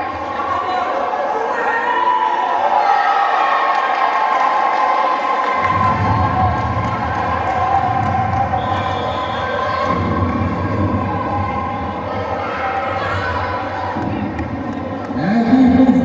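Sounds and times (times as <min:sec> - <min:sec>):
spectators cheering and shouting: 0:00.0 - 0:16.0
low rumble: 0:05.6 - 0:16.0.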